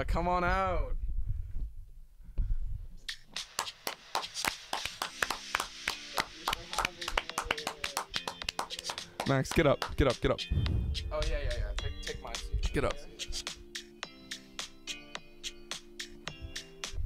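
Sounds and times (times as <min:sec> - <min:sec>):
hands clapping in applause: 0:03.4 - 0:10.2.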